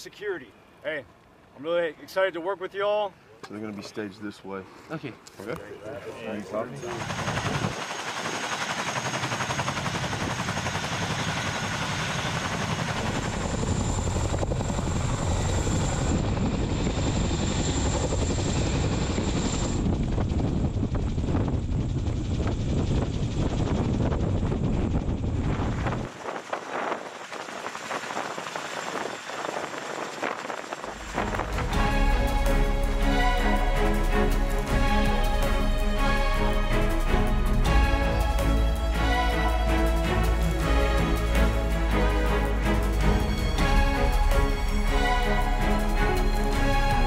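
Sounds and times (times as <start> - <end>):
helicopter rotor and engine noise: 5.2 - 47.0
high turbine whine: 6.4 - 47.0.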